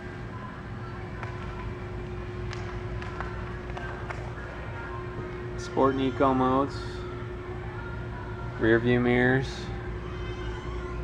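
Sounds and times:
low indoor background hum: 0:00.0 - 0:11.0.

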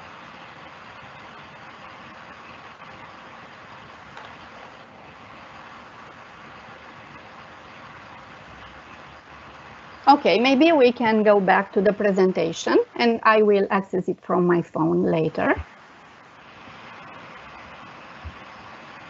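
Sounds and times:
faint steady hum: 0:00.0 - 0:19.0
microphone hiss: 0:00.0 - 0:19.0.

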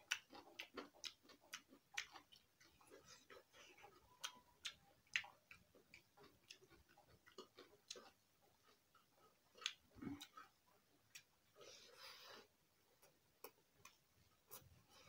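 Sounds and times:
mouth chewing: 0:00.0 - 0:15.0.

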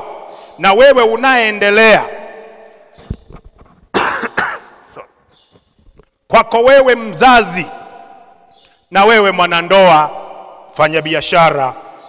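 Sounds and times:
man coughing: 0:03.9 - 0:05.2.

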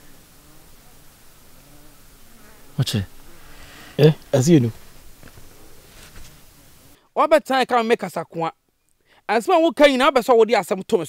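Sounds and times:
flying insect buzzing: 0:00.0 - 0:07.0.

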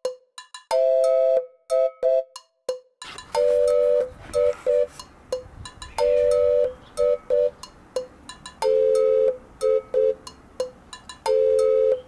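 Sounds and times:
light percussive ticks: 0:07.6 - 0:08.8.

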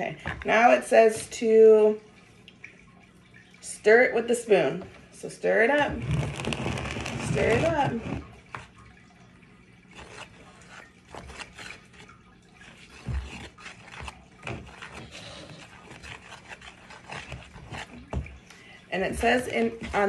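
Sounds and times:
spoon scraping plastic bowl: 0:05.8 - 0:08.7, 0:09.9 - 0:18.3.

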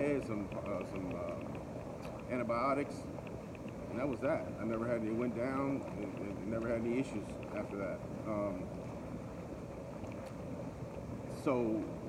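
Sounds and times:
hot tub jets bubbling water: 0:00.0 - 0:12.0.

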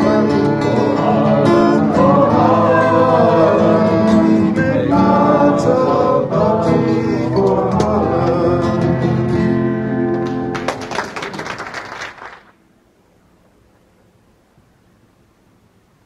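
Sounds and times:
person singing: 0:00.0 - 0:09.4
acoustic guitar: 0:00.0 - 0:11.6
audience applause: 0:10.1 - 0:12.6.

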